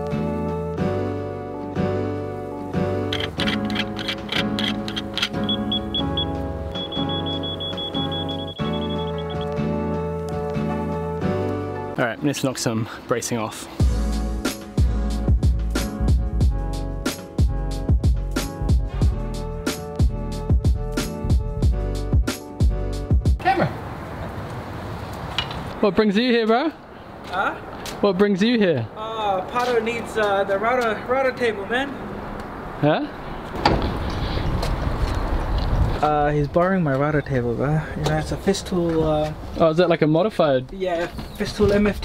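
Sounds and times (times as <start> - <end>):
outdoor background noise: 0.0 - 13.8, 23.3 - 42.0
background music: 0.0 - 23.7
high electronic beeps: 5.4 - 9.5.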